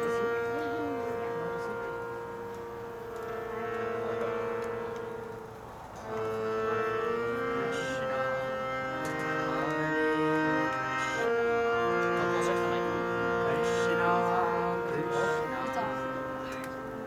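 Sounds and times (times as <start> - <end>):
harmonium chords: 0.0 - 17.0.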